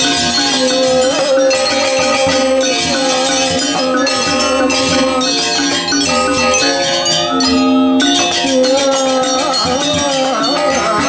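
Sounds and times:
drums: 0:00.0 - 0:11.0
metallophones ringing: 0:00.0 - 0:11.0.

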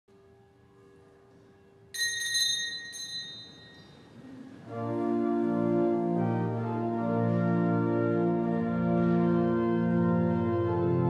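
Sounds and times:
bell ringing: 0:02.0 - 0:04.2
church organ chords: 0:03.8 - 0:11.0.

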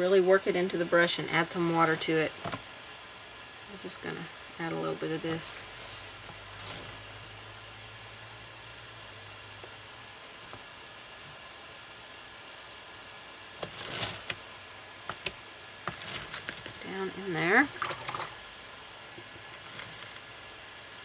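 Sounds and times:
low steady hum: 0:00.0 - 0:21.0.

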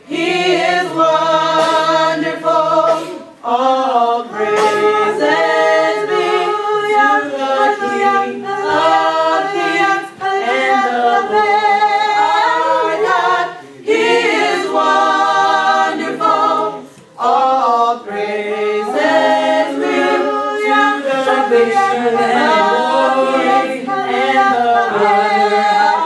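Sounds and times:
young voices singing a cappella: 0:00.0 - 0:26.0.

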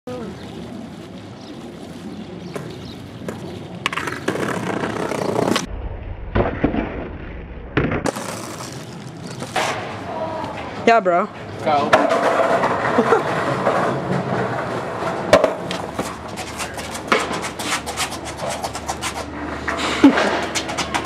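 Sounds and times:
skateboard wheels rolling on pavement: 0:00.1 - 0:05.7, 0:07.8 - 0:21.0
skateboard clacks: 0:02.5 - 0:05.7, 0:11.6 - 0:21.0
heavy low rumble: 0:05.0 - 0:08.0.

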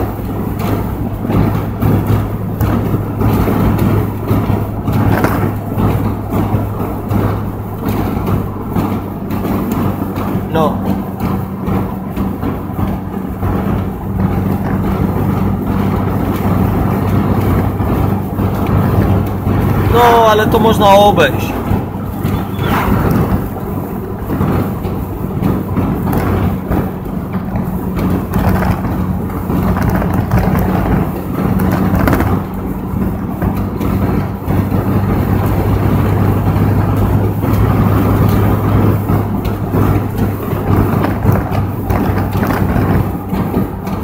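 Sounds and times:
car engine drone: 0:00.0 - 0:44.0
road and wind noise: 0:00.0 - 0:44.0.

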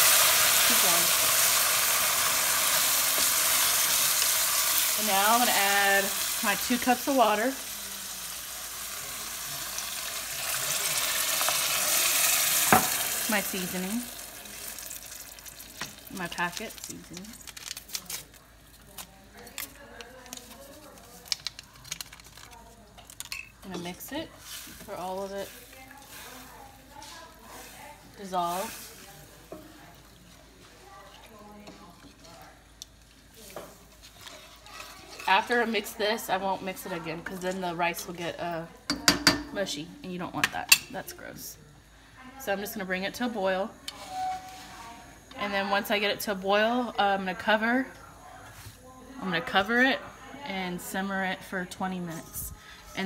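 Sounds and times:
water pouring into pot: 0:00.0 - 0:16.8
food sizzling and hissing: 0:00.0 - 0:17.8, 0:23.8 - 0:38.3, 0:41.1 - 0:53.0
spoon stirring wet mixture: 0:00.7 - 0:38.3.

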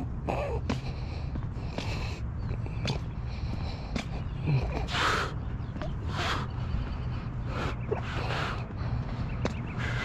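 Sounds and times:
footsteps on pavement: 0:00.0 - 0:10.0
steady low rumble: 0:00.0 - 0:10.0.

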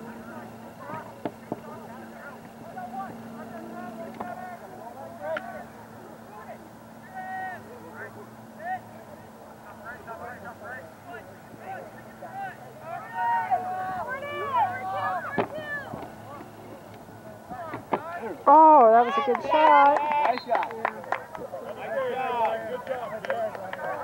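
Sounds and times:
steady low hum: 0:00.0 - 0:19.6.

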